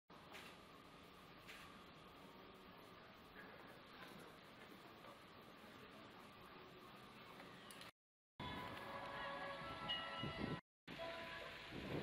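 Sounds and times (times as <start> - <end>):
ringing chime-like tones: 9.6 - 10.6.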